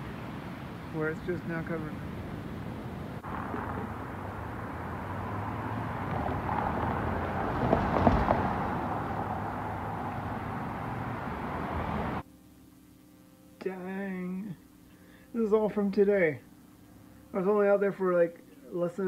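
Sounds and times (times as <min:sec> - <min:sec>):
pickup truck driving past: 0:03.2 - 0:12.2.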